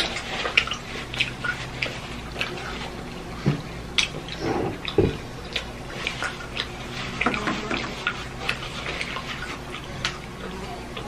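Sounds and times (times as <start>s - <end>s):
wet chewing mouth sounds: 0.0s - 11.0s.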